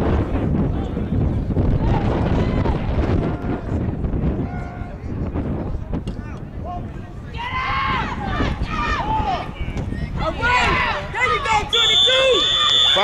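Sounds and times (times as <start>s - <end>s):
wind on microphone: 0.0s - 12.3s
people yelling: 7.3s - 9.6s, 10.2s - 13.0s
long whistle blast: 11.7s - 13.0s.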